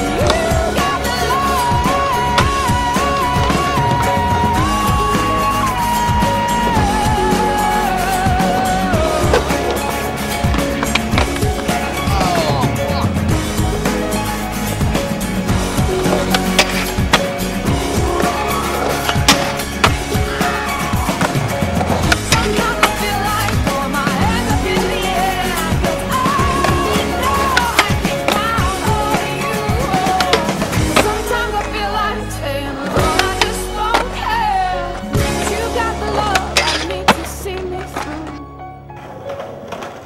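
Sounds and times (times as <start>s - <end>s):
song with singing: 0.0s - 10.3s, 22.0s - 38.1s
music playing: 0.0s - 40.0s
skateboards rolling on concrete: 0.0s - 40.0s.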